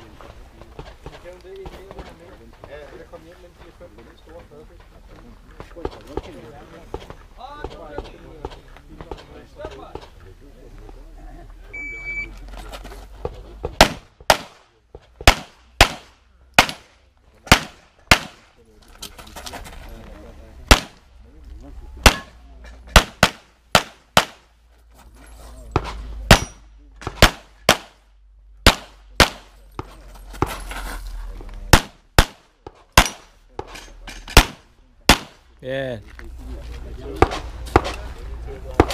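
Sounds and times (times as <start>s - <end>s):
shot timer beep: 11.8s - 12.3s
pistol shots: 13.8s - 14.6s, 15.2s - 16.9s, 17.5s - 18.4s, 20.7s - 21.0s, 22.0s - 24.5s, 26.3s - 28.0s, 28.6s - 29.6s, 31.7s - 33.3s, 34.3s - 35.4s.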